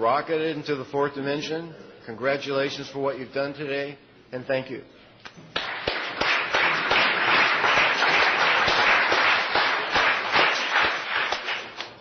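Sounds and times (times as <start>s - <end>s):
audience applauding: 5.5s - 12.0s.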